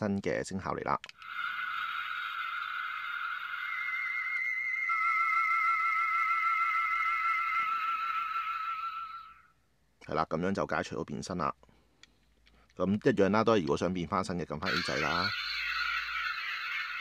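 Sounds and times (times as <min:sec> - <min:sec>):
toy electronic tone: 0:01.2 - 0:09.5, 0:14.6 - 0:17.0.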